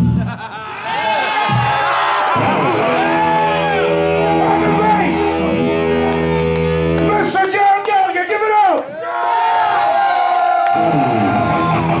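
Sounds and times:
crowd noise: 0:00.0 - 0:12.0
electric guitar notes: 0:02.4 - 0:07.4, 0:10.7 - 0:12.0
bass and drums: 0:02.4 - 0:07.7, 0:10.8 - 0:12.0.

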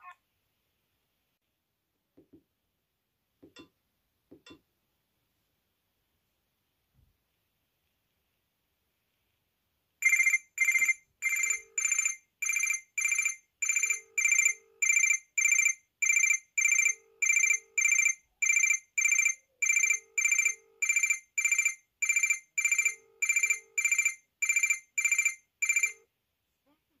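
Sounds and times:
electronic ringtone beeps: 0:10.0 - 0:26.0.

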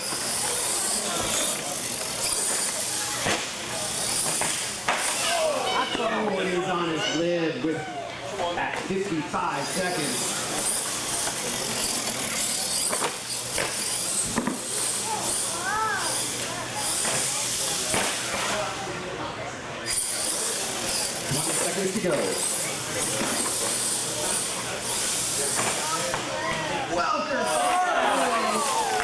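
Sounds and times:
toy truck motor whine: 0:00.0 - 0:05.8, 0:09.6 - 0:17.9, 0:19.9 - 0:26.4, 0:27.4 - 0:29.0
crowd chatter: 0:00.0 - 0:29.0
toy truck knocks: 0:12.8 - 0:14.6.

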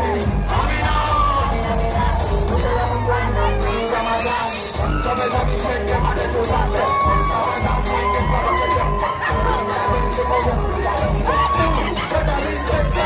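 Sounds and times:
crowd cheering and shouting: 0:00.0 - 0:13.0
loud music with steady beat: 0:00.0 - 0:13.0
person singing a long high note: 0:00.0 - 0:13.0.

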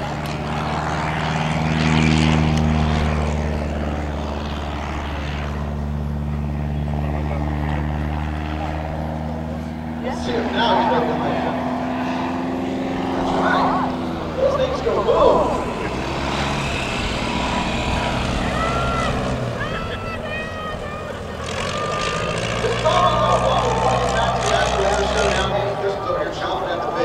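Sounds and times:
propeller plane engine droning: 0:00.0 - 0:27.0.

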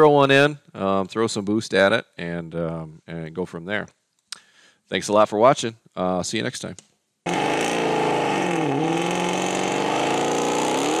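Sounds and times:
car engine revving high: 0:07.3 - 0:11.0.

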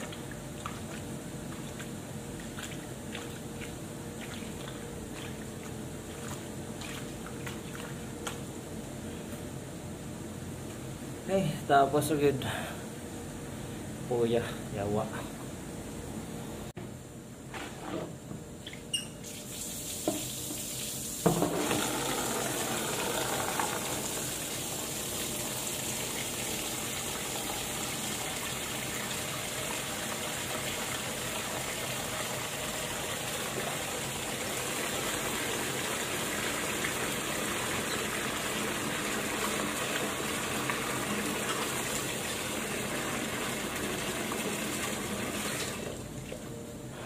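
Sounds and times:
tap water running into sink: 0:19.9 - 0:45.9.

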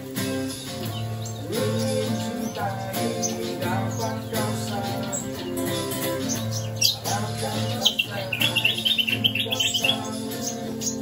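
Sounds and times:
acoustic guitar music: 0:00.0 - 0:11.0
bird chirping trill: 0:00.0 - 0:11.0.

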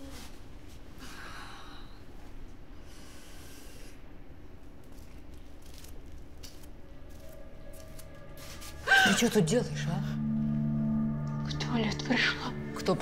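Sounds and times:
low room hum: 0:00.0 - 0:13.0
sustained music tone: 0:06.9 - 0:13.0.

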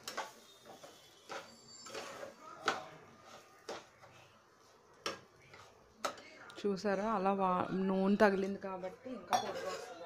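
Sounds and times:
steel ladle clinking on metal pan: 0:09.3 - 0:09.9.

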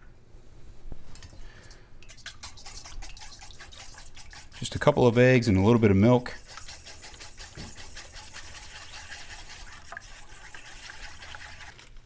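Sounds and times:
man talking: 0:04.6 - 0:06.4.

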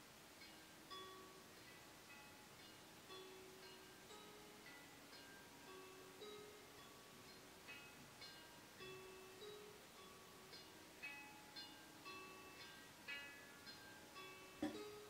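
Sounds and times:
soft chime-like plucked music: 0:00.0 - 0:15.0.

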